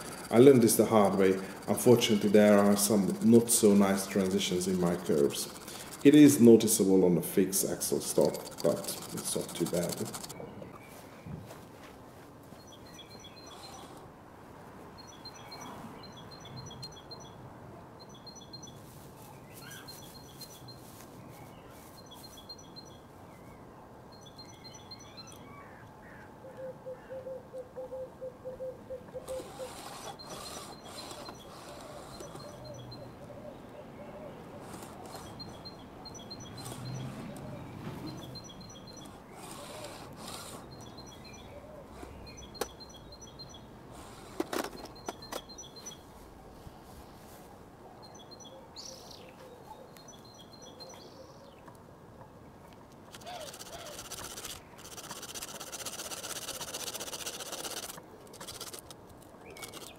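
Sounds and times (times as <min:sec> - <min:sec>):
sharp clicks: 0:00.0 - 0:06.4, 0:08.0 - 0:10.4, 0:29.3 - 0:32.9, 0:52.8 - 0:59.9
small birds chirping: 0:00.0 - 0:11.4, 0:12.5 - 0:14.1, 0:15.0 - 0:17.4, 0:18.0 - 0:27.0, 0:29.2 - 0:51.7, 0:53.0 - 0:59.9.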